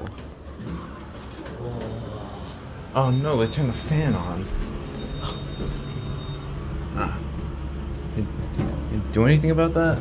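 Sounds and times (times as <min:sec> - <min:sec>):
ventilation fan humming: 0:00.0 - 0:10.0.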